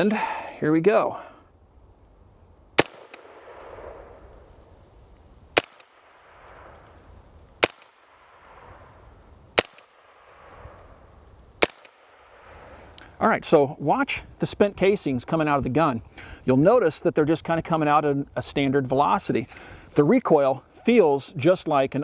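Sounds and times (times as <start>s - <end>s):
suppressed rifle shots with echo: 2.8s - 4.4s, 5.6s - 6.8s, 7.6s - 8.8s, 9.6s - 11.0s, 11.6s - 12.4s.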